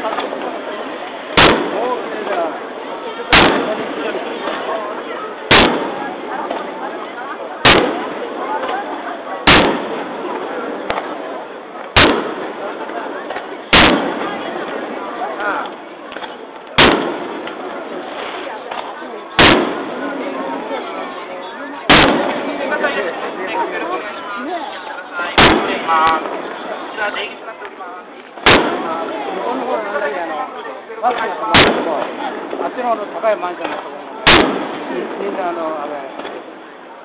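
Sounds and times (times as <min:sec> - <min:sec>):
murmur of crowd voices: 0:00.0 - 0:37.0
firework bang: 0:01.3 - 0:02.6, 0:03.3 - 0:06.9, 0:07.6 - 0:20.4, 0:21.9 - 0:23.6, 0:25.2 - 0:27.3, 0:28.4 - 0:30.1, 0:31.1 - 0:36.6
firework shell bang: 0:03.3 - 0:04.7, 0:16.2 - 0:17.6, 0:25.4 - 0:26.5, 0:33.6 - 0:35.0.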